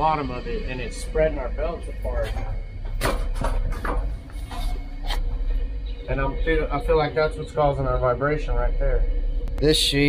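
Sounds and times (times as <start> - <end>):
air-handling machinery rumble: 0.0 - 10.0
sharp knocks and clicks: 2.8 - 5.5.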